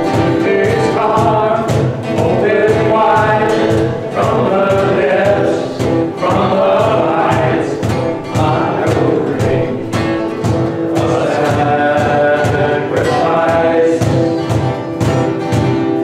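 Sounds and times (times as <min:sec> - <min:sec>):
group of voices singing: 0:00.0 - 0:14.9
worship band playing: 0:00.0 - 0:16.0.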